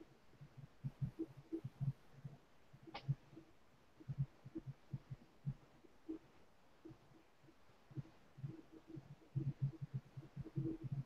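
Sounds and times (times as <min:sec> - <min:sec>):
soft low thumps: 0:04.0 - 0:11.0.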